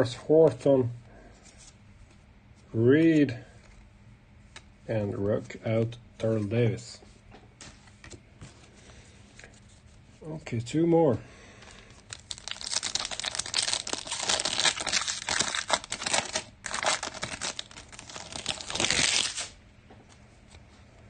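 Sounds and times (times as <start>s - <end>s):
wrapper tearing and crinkling: 11.8s - 19.6s.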